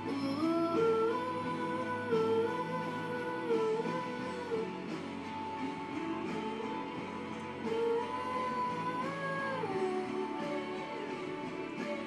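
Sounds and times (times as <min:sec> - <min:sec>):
held melody line: 0:00.0 - 0:12.0
pop backing music with guitar: 0:00.0 - 0:12.0.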